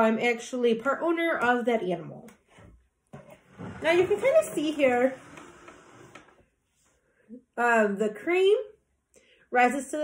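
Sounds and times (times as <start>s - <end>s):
glass jar scraping on table: 3.4s - 6.3s.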